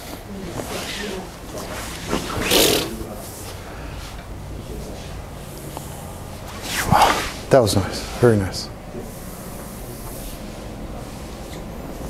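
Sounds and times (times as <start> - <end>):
faint voices: 0.0 - 12.0
room noise: 0.0 - 12.0
breathy rush of noise: 0.3 - 12.0.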